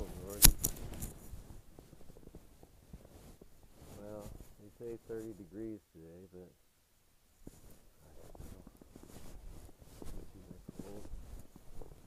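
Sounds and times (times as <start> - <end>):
man's wordless voice: 0.0 - 0.4, 4.0 - 6.6, 10.2 - 11.2
sharp click: 0.4 - 1.1.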